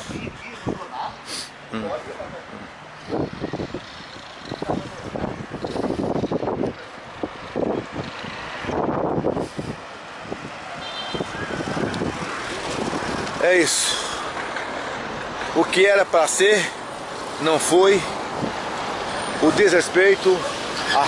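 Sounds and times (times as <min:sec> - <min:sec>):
vehicles going by: 0:00.0 - 0:21.0.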